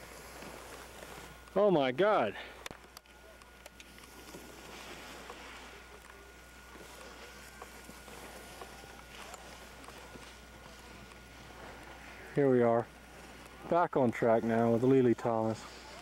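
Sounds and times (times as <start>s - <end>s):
camcorder hiss and hum: 0.0s - 16.0s
thin steady whine: 0.0s - 16.0s
faint clicks: 2.6s - 4.4s.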